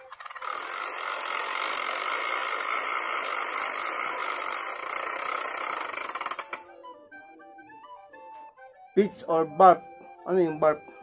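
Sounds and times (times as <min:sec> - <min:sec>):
spinning wheel ticking: 0:00.0 - 0:06.8.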